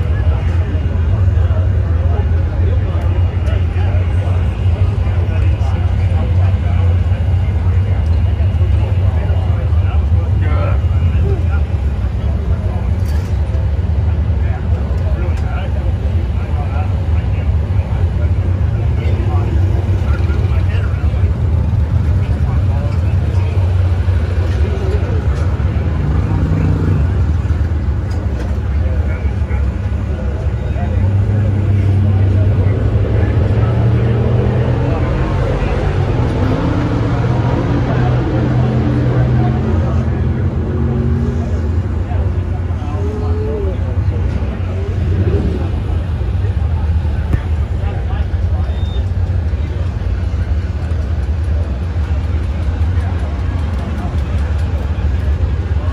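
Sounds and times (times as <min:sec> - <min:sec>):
muffled engine idling: 0:00.0 - 0:55.9.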